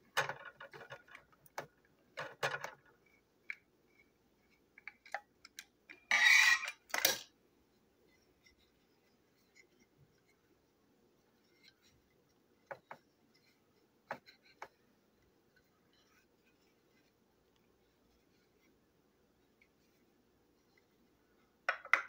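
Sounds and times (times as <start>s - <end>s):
small plastic clicks and rattles: 0.0s - 3.7s.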